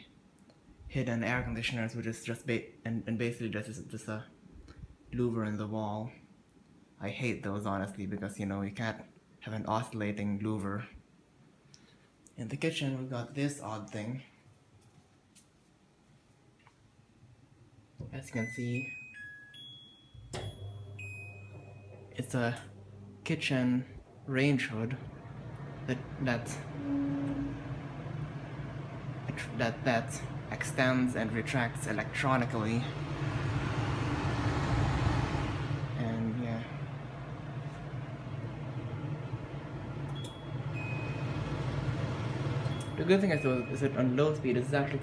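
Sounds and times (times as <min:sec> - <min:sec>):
range hood motor humming: 0:20.2 - 0:45.0.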